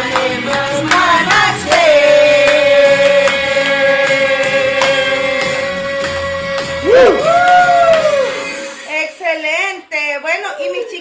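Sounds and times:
person singing: 0:00.0 - 0:08.5
music track: 0:00.0 - 0:09.3.

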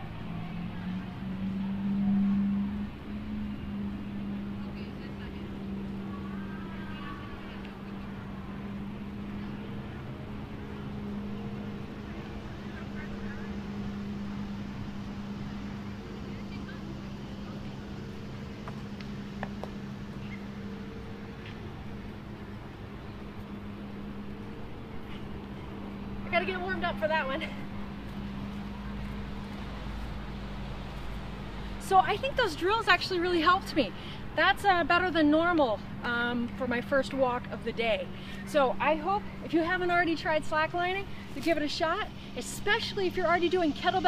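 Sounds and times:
faint distant voices: 0:00.0 - 0:44.0
low motor hum: 0:00.0 - 0:44.0.

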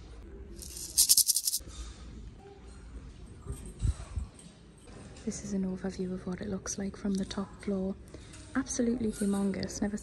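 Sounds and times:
maraca rattling: 0:00.6 - 0:01.6.

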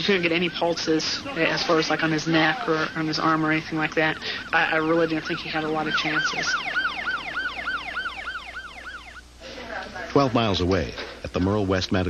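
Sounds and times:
ambulance siren yelping: 0:00.0 - 0:09.3.

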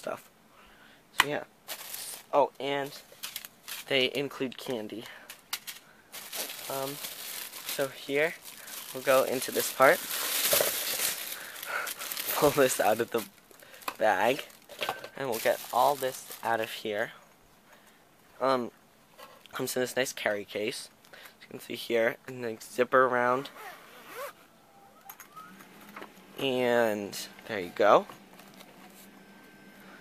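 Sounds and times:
plastic bag crinkling: 0:01.7 - 0:02.4, 0:03.0 - 0:04.0, 0:06.1 - 0:16.7
zipper being opened: 0:23.5 - 0:24.4.

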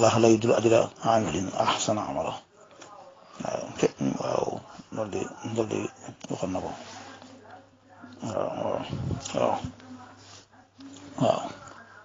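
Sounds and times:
man speaking: 0:00.0 - 0:07.0, 0:08.2 - 0:09.8.

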